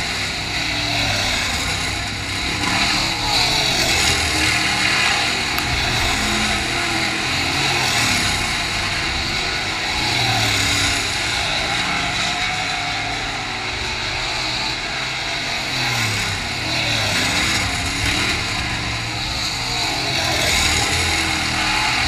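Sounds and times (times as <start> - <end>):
race car engines passing: 0.0 - 22.0.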